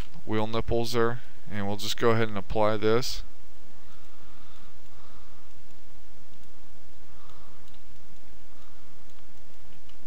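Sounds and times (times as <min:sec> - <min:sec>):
low hum and hiss: 0:00.0 - 0:10.0
computer mouse clicks: 0:04.8 - 0:06.6, 0:07.2 - 0:10.0.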